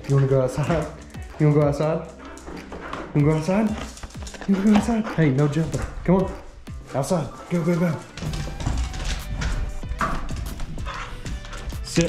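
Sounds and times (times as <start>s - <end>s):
dog claws clicking on wooden floor: 0.0s - 5.7s, 7.4s - 12.0s
background music: 0.0s - 12.0s.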